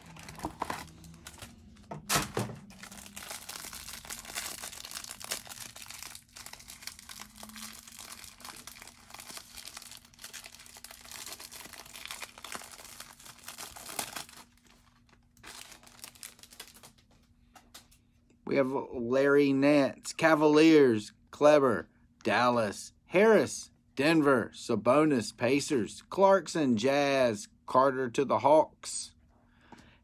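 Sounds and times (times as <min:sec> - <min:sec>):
plastic wrap crinkling and tearing: 0:00.0 - 0:17.1.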